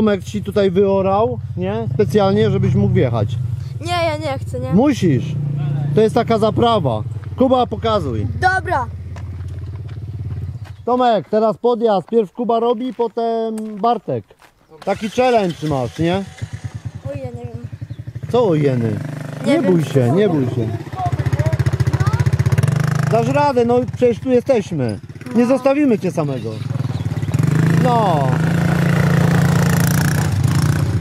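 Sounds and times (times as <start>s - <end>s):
quad engine idling: 14.8s - 30.8s.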